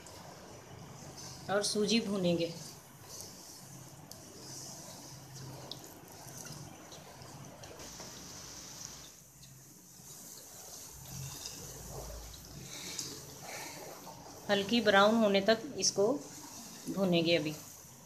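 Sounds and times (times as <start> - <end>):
semolina sizzling in oil: 0.0 - 18.0.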